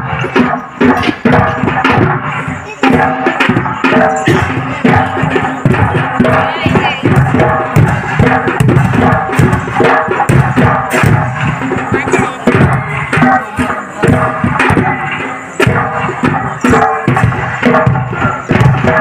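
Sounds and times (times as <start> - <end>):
loud dense drumbeats: 0.0 - 19.0.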